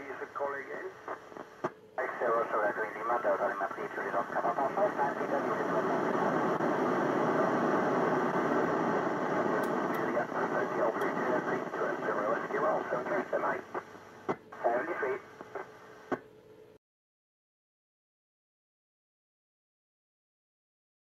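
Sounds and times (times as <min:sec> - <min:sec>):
radio noise: 0:00.0 - 0:16.2
garbled voices over radio: 0:02.0 - 0:06.3, 0:10.0 - 0:13.7, 0:14.6 - 0:15.2.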